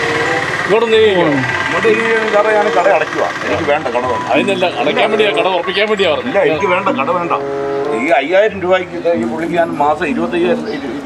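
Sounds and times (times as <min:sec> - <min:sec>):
person talking: 0:01.0 - 0:07.4.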